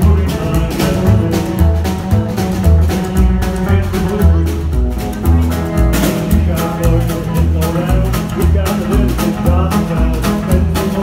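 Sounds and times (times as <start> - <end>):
upright double bass: 0.0 - 11.0.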